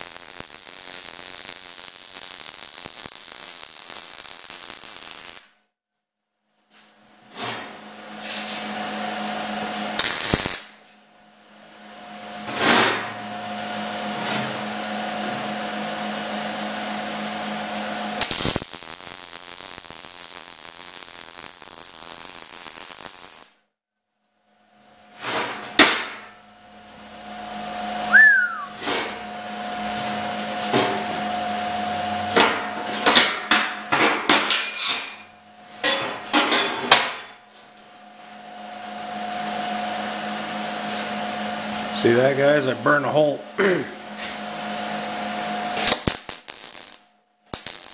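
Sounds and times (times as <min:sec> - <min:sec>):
welding arc crackle: 0:00.0 - 0:05.6, 0:10.0 - 0:10.8, 0:18.2 - 0:23.6, 0:45.3 - 0:47.9
fan hum: 0:37.6 - 0:46.0.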